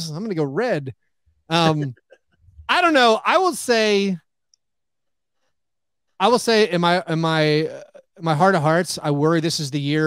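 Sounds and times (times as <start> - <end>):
man speaking: 0.0 - 0.9, 1.5 - 2.0, 2.7 - 4.2, 6.2 - 10.0.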